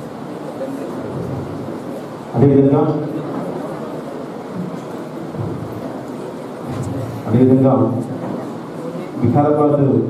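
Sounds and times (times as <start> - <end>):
crowded hall room noise: 0.0 - 10.0.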